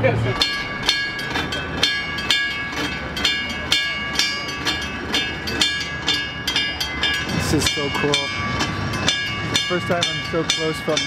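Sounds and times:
warning bell clanging: 0.0 - 11.0.

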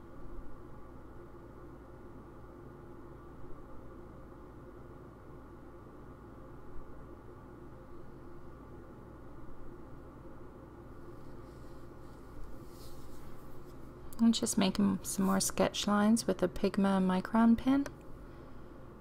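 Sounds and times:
low room tone hum: 0.0 - 19.0.

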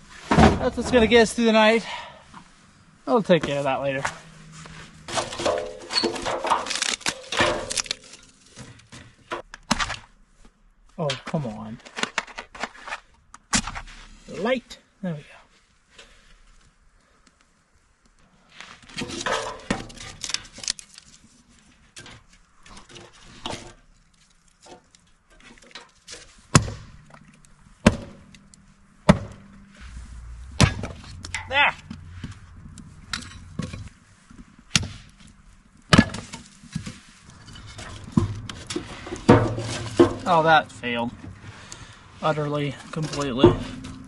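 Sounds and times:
wood being handled and rustled: 0.0 - 14.6, 15.5 - 44.0.

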